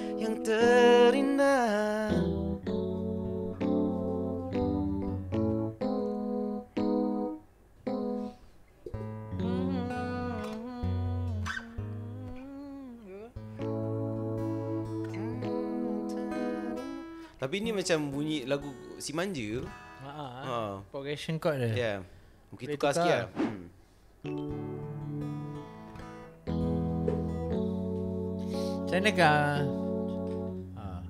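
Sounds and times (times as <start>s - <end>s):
electric keyboard chords: 0.0s - 19.2s, 24.2s - 31.0s
acoustic guitar chords: 0.0s - 20.8s, 24.2s - 31.0s.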